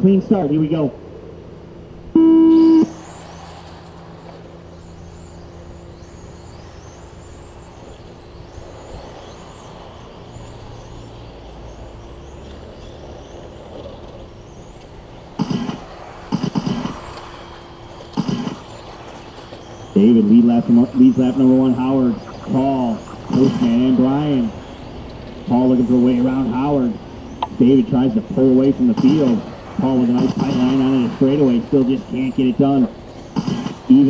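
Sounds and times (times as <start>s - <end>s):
rc car motors whining: 1.2s - 34.0s
electronic start tone: 2.1s - 3.2s.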